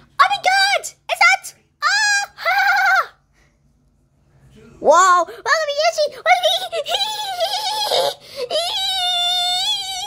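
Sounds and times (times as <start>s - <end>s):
child's wordless call: 4.8s - 10.0s.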